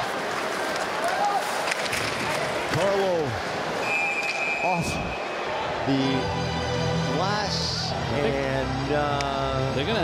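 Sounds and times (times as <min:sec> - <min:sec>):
hockey sticks and puck clacking: 0:00.0 - 0:03.0
noisy crowd: 0:00.0 - 0:10.0
steady high whistle tone: 0:03.8 - 0:05.4.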